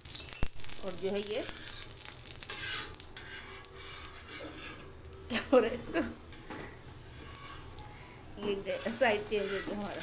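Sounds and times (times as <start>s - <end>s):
bread sizzling in oil: 0.0s - 10.0s
tongs rubbing on griddle: 1.4s - 4.9s, 7.1s - 10.0s.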